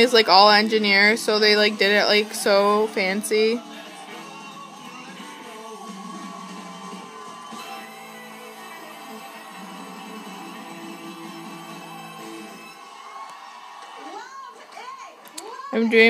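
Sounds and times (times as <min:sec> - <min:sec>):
television music: 0:00.0 - 0:16.0.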